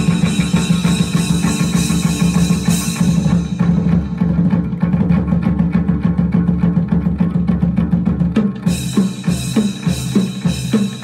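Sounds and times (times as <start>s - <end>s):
fast even clicking beat: 0.0s - 5.0s.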